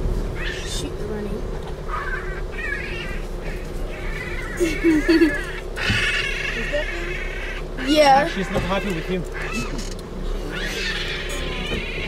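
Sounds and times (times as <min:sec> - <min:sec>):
baboons squealing and yelping: 0:00.3 - 0:00.9, 0:01.8 - 0:12.0.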